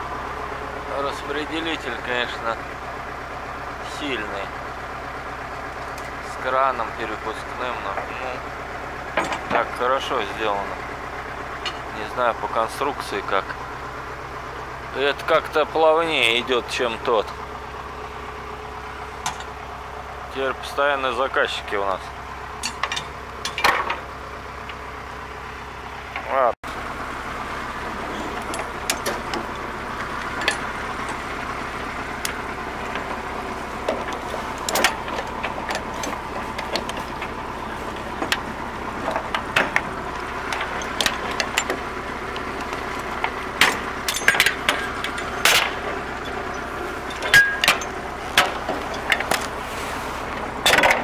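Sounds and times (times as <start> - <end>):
engine idling: 0.0 - 51.0
steel chains clanking on metal deck: 9.1 - 9.7, 22.6 - 24.0, 28.0 - 49.5.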